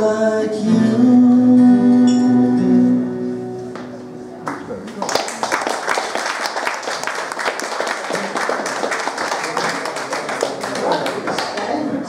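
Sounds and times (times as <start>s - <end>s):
audience applauding: 4.5s - 12.0s.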